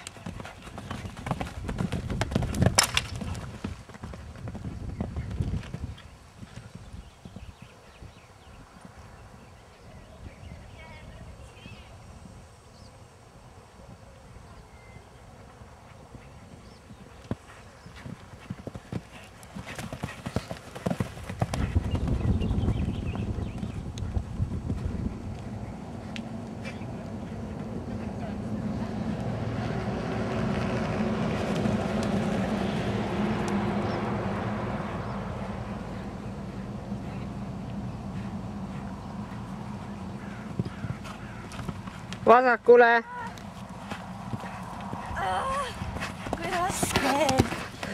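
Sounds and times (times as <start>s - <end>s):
horse hoofbeats on sand: 0.0s - 7.7s, 15.4s - 32.3s, 37.7s - 42.4s, 43.2s - 47.9s.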